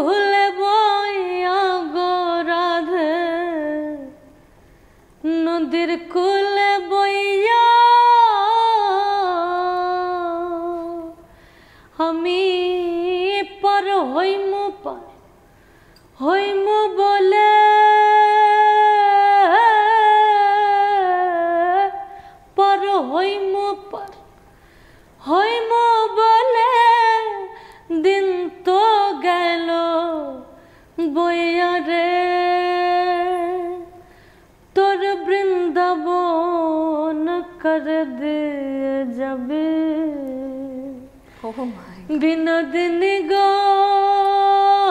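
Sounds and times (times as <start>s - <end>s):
woman singing unaccompanied: 0.0s - 4.4s, 5.2s - 11.3s, 11.9s - 15.2s, 16.2s - 24.4s, 25.2s - 34.1s, 34.7s - 44.9s.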